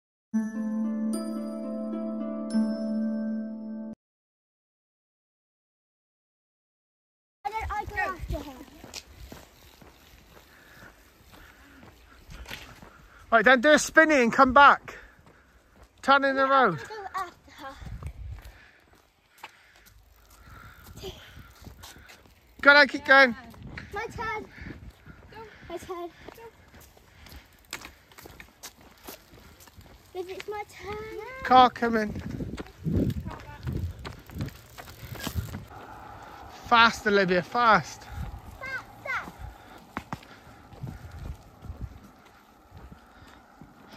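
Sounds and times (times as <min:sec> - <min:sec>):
faint outdoor background: 0:07.4 - 0:43.9
bicycle rolling on tarmac: 0:07.5 - 0:43.9
person speaking: 0:35.7 - 0:42.4.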